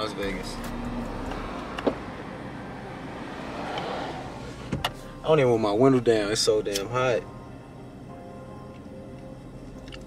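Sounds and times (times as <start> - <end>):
car cabin engine noise: 0.0 - 10.0.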